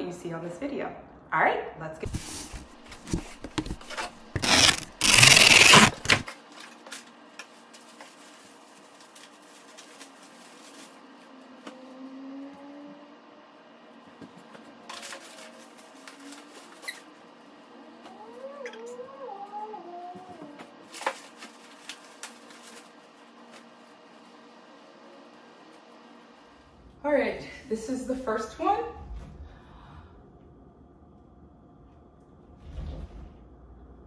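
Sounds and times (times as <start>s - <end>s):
packing tape tearing on cardboard: 2.1s - 6.3s.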